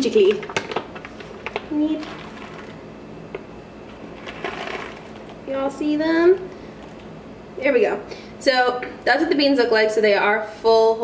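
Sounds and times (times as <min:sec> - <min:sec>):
paper bag crinkling: 0:00.0 - 0:02.8, 0:04.1 - 0:05.4.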